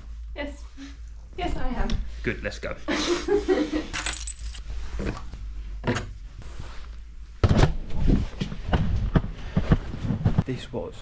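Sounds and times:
keys jangling: 3.9 - 4.7.

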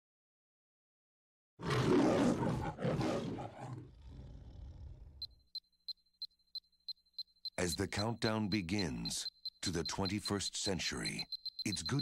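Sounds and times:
lion roaring: 1.6 - 5.2
short high electronic beeps: 5.2 - 12.0.

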